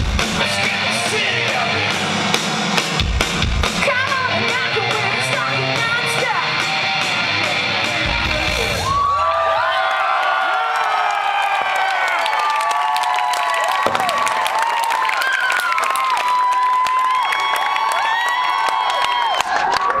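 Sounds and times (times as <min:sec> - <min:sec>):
live electro-punk band: 0:00.0 - 0:09.3
crowd cheering and clapping: 0:05.8 - 0:20.0.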